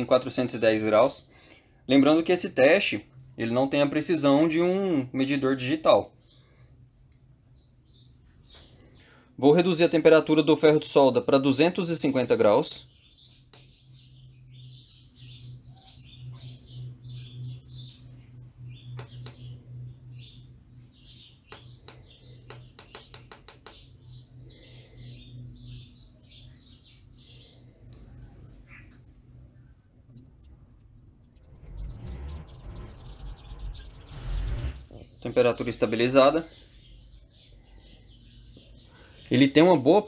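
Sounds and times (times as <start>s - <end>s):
steady low hum: 0.0s - 39.9s
birds chirping: 0.0s - 40.0s
low rumbling handling noise: 30.0s - 35.3s.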